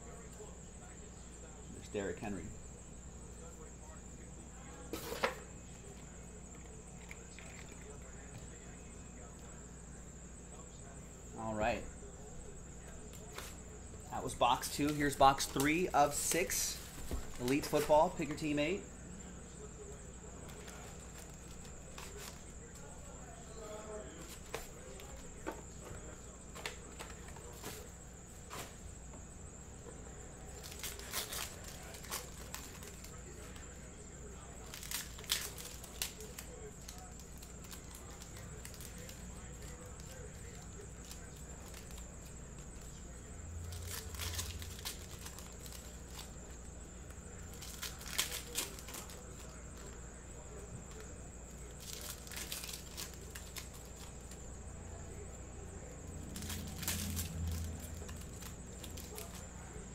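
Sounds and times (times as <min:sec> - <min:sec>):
low background hum: 0:00.0 - 0:59.9
cards being handled: 0:04.9 - 0:08.5, 0:12.9 - 0:18.8, 0:20.2 - 0:28.9, 0:30.4 - 0:59.9
foil wrappers crinkling and tearing: 0:13.1 - 0:18.8, 0:20.3 - 0:22.9, 0:30.4 - 0:59.9.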